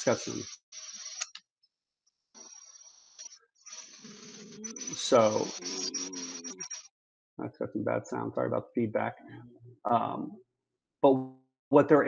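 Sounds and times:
hissy broken audio: 0:00.0 - 0:01.4, 0:02.4 - 0:06.9
low drone: 0:03.8 - 0:10.3.

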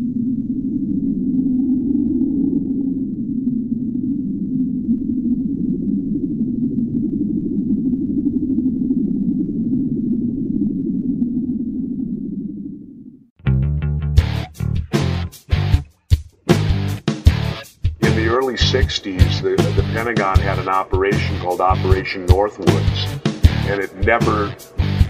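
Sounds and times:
low rumbling drone: 0:16.6 - 0:25.0.

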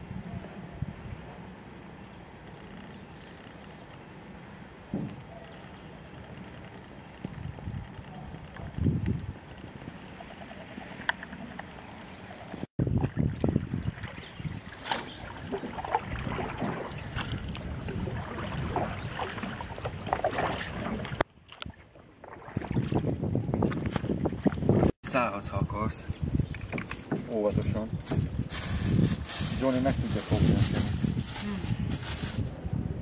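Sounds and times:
wind on microphone: 0:00.0 - 0:01.4, 0:07.2 - 0:11.6, 0:12.5 - 0:33.0
water sloshing against hull: 0:09.5 - 0:24.9
paddle splashes: 0:09.9 - 0:24.9.

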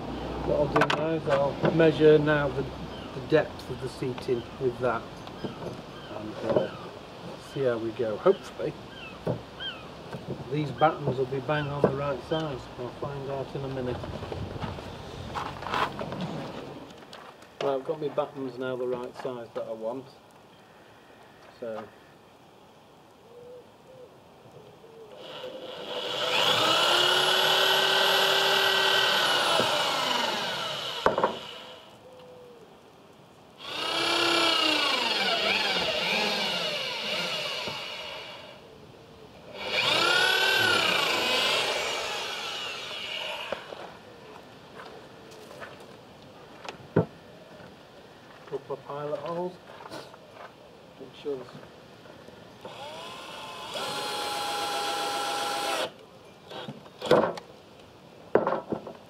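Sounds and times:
electric drill boring into wood: 0:25.2 - 0:31.9, 0:33.6 - 0:38.6, 0:39.5 - 0:43.8, 0:52.6 - 0:56.7.

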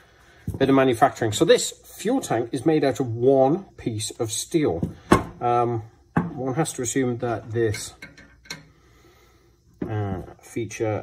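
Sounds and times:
faint clicks of metal tank handled: 0:07.6 - 0:08.7.

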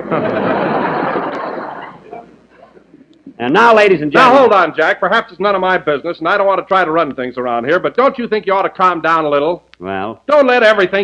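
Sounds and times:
studio audience laughing: 0:00.0 - 0:03.1.

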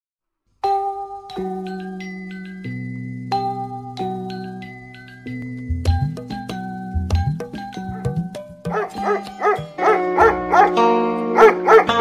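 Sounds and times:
bell-like jingle notes: 0:00.7 - 0:10.7.

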